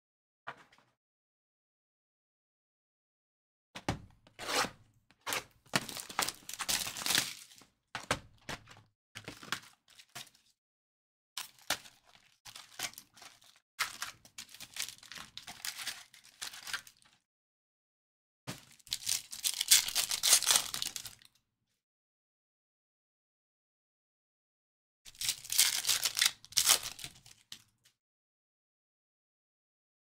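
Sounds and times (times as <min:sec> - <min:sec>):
foil wrappers crinkling and tearing: 0:18.7 - 0:21.1, 0:25.2 - 0:27.4.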